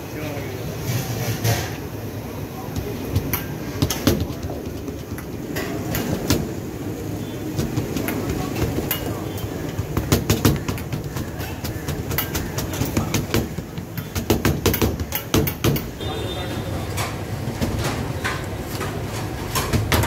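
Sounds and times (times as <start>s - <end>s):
low rumble of street noise: 0.0s - 20.0s
sharp taps and clatters: 2.7s - 6.6s, 7.5s - 16.0s.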